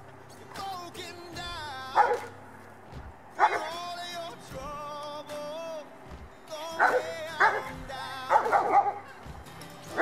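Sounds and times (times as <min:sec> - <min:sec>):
dog barking: 0:02.0 - 0:02.3, 0:03.4 - 0:03.7, 0:06.8 - 0:07.7, 0:08.3 - 0:09.1.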